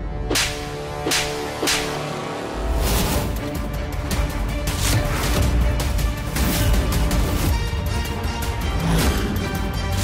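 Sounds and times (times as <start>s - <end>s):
whip-like whooshes: 0.3s - 2.1s.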